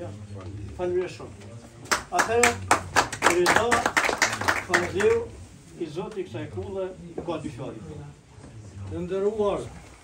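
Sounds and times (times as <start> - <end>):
audience applauding: 1.9 - 5.2.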